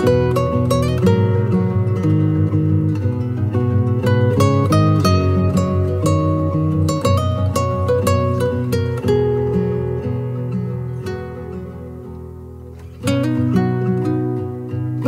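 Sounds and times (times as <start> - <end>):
plucked acoustic guitar: 0.0 - 15.0.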